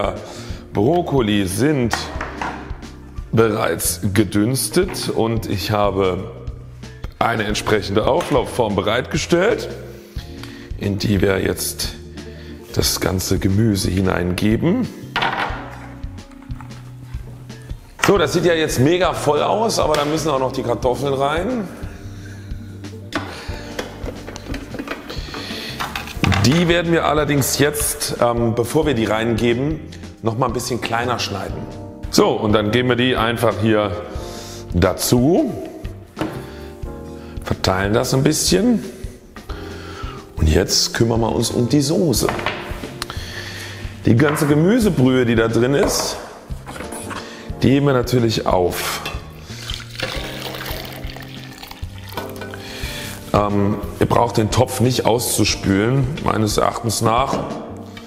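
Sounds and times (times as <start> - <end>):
soft background music: 0.0 - 58.0
plastic kitchenware clicking: 23.7 - 26.7
broth pouring into jug: 49.5 - 52.5.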